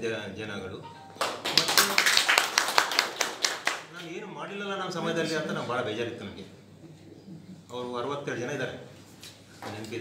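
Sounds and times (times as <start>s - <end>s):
people clapping: 1.2s - 4.1s.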